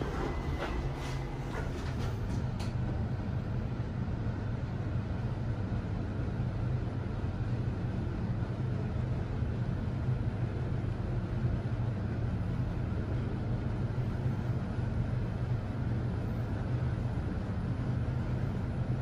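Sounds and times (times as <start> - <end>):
elevator hum and rumble: 0.0 - 19.0.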